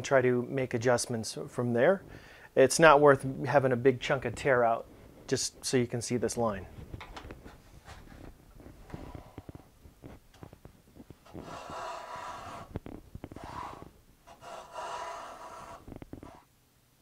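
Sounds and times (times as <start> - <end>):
hand plane shaving strokes: 11.3 - 12.7, 13.4 - 16.5.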